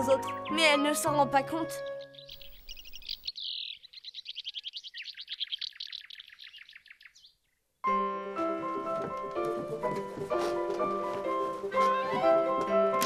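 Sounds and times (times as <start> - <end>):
songbird trilling: 1.6 - 7.6.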